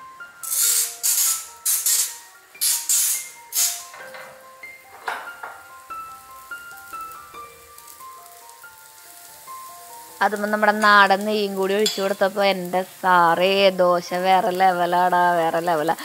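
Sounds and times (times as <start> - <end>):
oil sizzling on a hot pan: 0.0 - 16.0
soft background music: 0.0 - 16.0.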